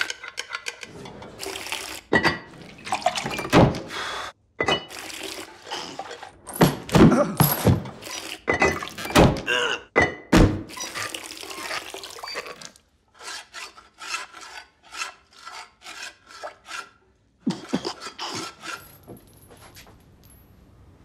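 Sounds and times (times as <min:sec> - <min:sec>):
water splashing and pouring: 0:01.0 - 0:04.2, 0:04.9 - 0:06.4, 0:10.7 - 0:12.9.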